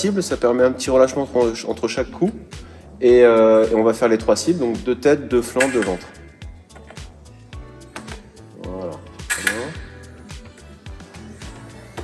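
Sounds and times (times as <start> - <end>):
hip-hop music with vocals: 0.0 - 12.0.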